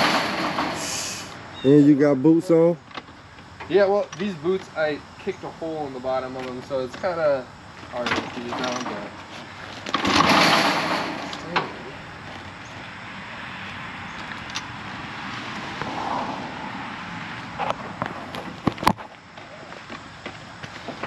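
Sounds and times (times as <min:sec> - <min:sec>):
dirt bike engine turning over: 0:08.0 - 0:12.8.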